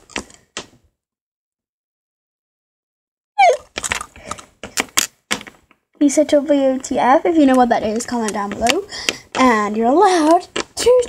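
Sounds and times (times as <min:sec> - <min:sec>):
plastic figures tapping on hard floor: 0:03.6 - 0:05.8, 0:06.8 - 0:11.0.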